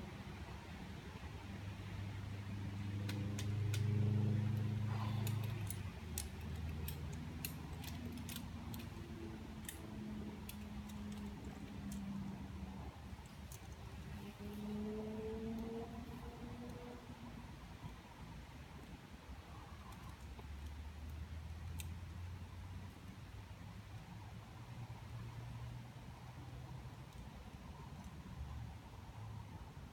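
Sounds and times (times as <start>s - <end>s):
metal carabiners clinking: 4.6s - 12.1s.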